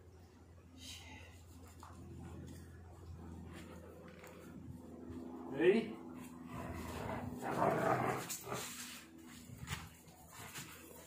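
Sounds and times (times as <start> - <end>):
dog growling: 6.5 - 8.8.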